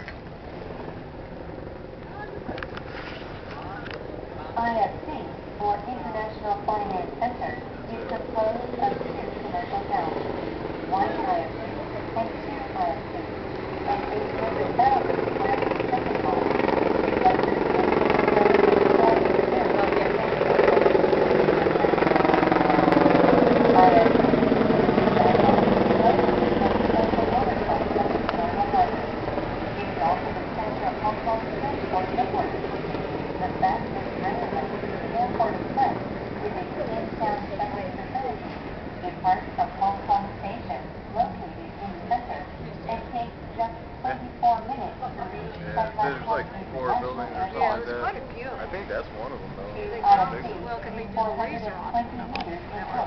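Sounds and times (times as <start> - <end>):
ferry engine droning: 0.0 - 53.0
passengers chattering: 0.0 - 53.0.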